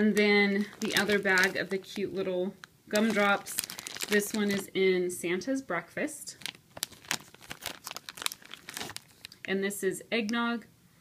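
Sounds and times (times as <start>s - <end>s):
plastic bag crinkling: 0.0s - 4.7s, 6.3s - 9.5s.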